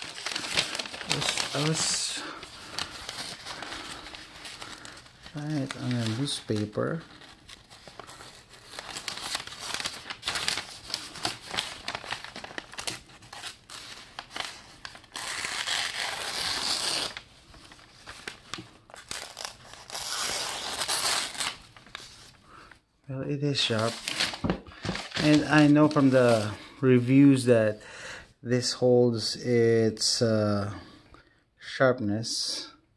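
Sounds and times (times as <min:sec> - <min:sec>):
paper rustling and crinkling: 0:00.0 - 0:22.8, 0:23.5 - 0:27.1.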